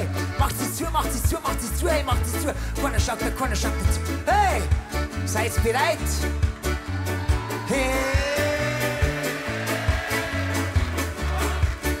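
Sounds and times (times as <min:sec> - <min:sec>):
bass line: 0:00.0 - 0:12.0.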